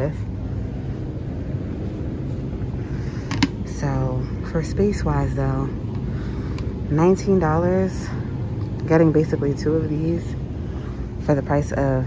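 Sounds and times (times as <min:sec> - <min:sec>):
low store background rumble: 0:00.0 - 0:12.0.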